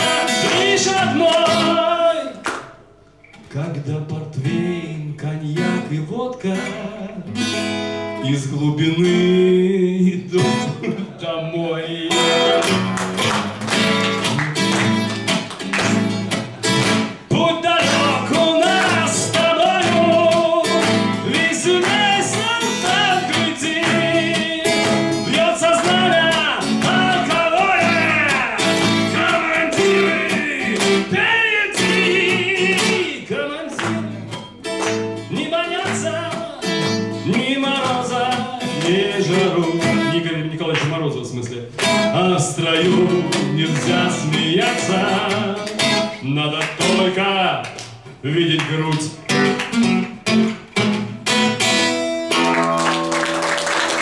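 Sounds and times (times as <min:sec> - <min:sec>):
man singing: 0:00.0 - 0:02.5, 0:03.4 - 0:12.8, 0:17.1 - 0:49.6
acoustic guitar strumming: 0:00.0 - 0:54.0.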